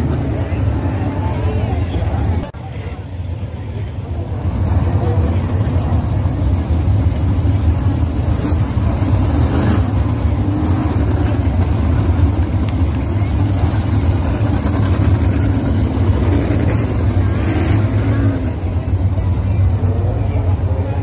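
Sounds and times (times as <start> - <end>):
racing car engines passing: 4.0 - 21.0.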